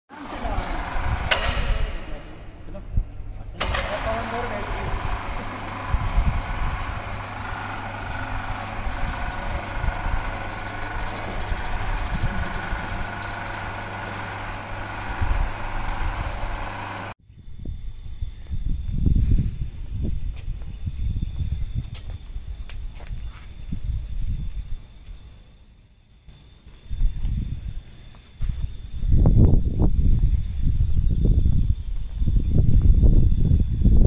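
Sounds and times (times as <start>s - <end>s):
indistinct voices: 0.1s - 16.5s
low machine hum: 0.1s - 17.2s.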